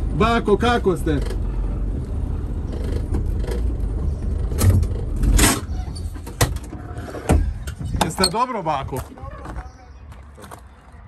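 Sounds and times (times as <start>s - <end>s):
diesel engine rumbling: 0.0s - 11.0s.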